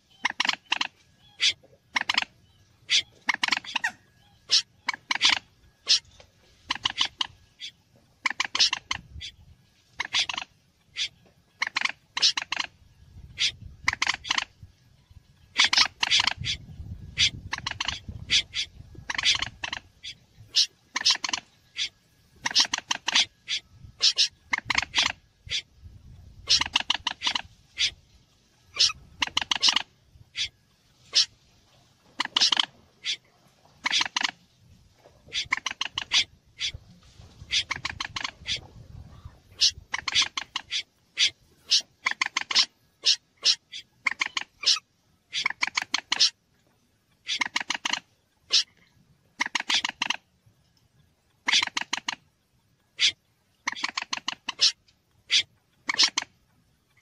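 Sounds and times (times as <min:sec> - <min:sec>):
birds calling with harsh clicks: 0:00.0 - 0:09.0, 0:10.0 - 0:14.6, 0:15.4 - 0:16.6, 0:17.2 - 0:25.7, 0:28.6 - 0:31.3, 0:39.5 - 0:46.4, 0:47.1 - 0:57.0.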